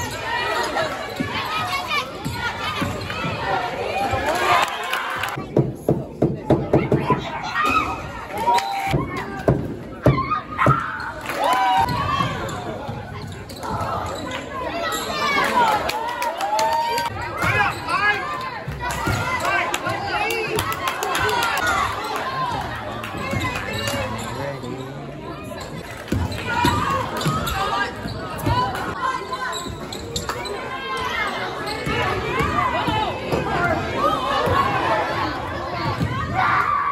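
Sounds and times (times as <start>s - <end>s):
spectators' voices: 0.0s - 36.9s.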